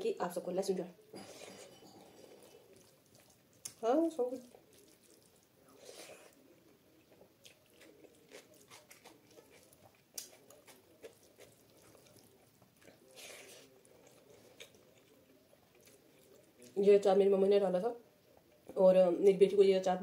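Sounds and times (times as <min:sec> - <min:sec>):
wet chewing and mouth clicks: 0:02.2 - 0:06.4, 0:07.0 - 0:16.8
fingers mixing rice on steel plate: 0:04.4 - 0:05.4.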